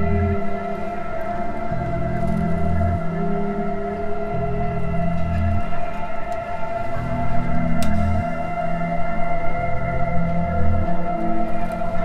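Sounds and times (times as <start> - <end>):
ambient electronic music: 0.0 - 12.0.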